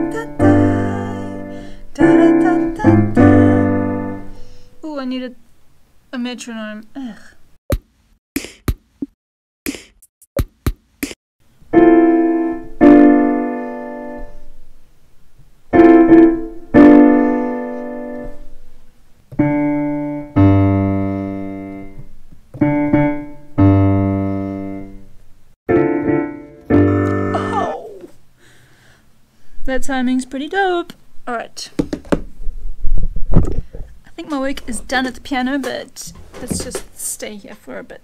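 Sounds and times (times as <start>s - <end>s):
piano keyboard chords: 0.0s - 4.4s, 11.7s - 14.5s, 15.7s - 18.6s, 19.3s - 27.8s.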